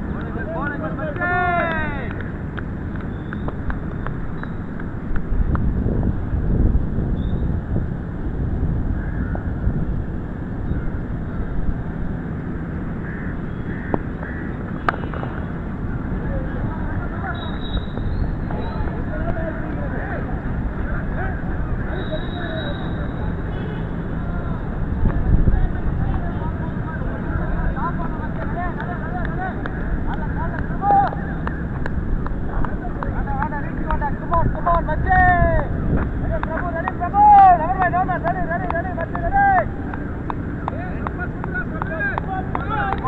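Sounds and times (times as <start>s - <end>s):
wind buffeting microphone: 0.0s - 21.9s, 23.0s - 43.0s
distant voices calling: 8.8s - 43.0s.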